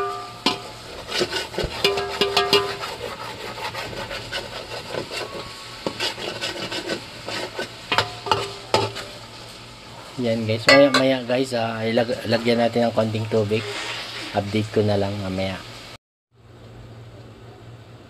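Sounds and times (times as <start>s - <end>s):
spatula scraping metal pot: 0.0s - 9.2s
meat sizzling: 0.0s - 16.0s.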